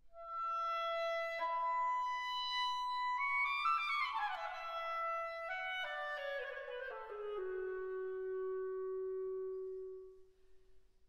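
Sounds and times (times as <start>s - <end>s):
solo clarinet: 0.1s - 10.3s.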